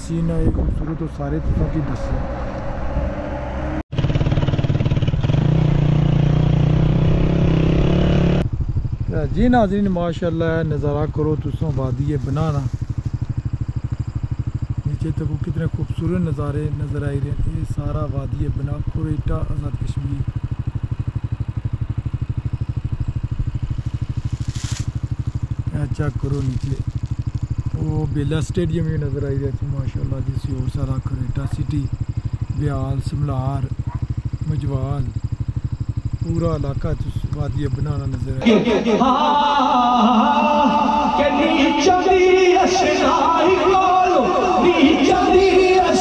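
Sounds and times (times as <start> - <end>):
small motorcycle engine running: 0.1 - 46.0.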